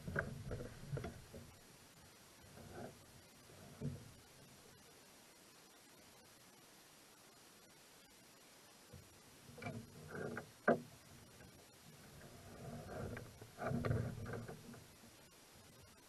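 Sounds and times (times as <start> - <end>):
knocking and rustling in canoe: 0.0 - 1.6, 9.0 - 11.5, 12.2 - 14.9.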